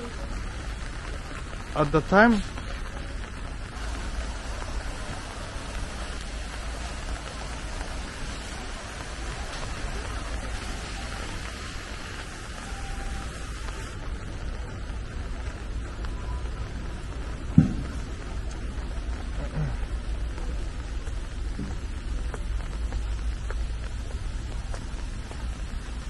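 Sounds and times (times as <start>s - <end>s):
rain on wet paving: 0.0s - 26.0s.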